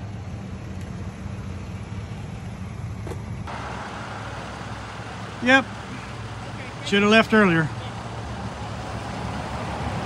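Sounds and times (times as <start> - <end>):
road noise hiss: 0.0 - 10.0
truck engine idling: 0.0 - 10.0.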